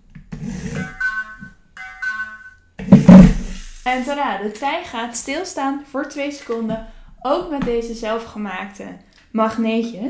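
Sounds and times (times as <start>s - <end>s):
electronic tones: 0.5s - 3.4s.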